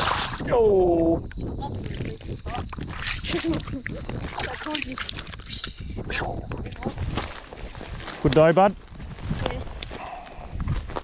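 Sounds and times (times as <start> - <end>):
water trickling: 0.0 - 7.0.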